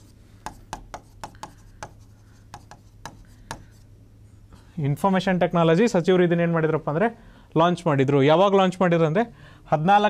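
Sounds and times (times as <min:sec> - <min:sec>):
low room hum: 0:00.0 - 0:10.0
pen tapping on a screen: 0:00.4 - 0:03.8.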